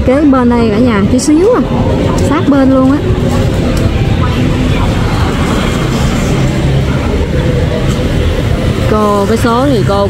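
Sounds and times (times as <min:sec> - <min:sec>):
faint voices: 0:00.0 - 0:10.0
motor traffic rumble: 0:00.0 - 0:10.0.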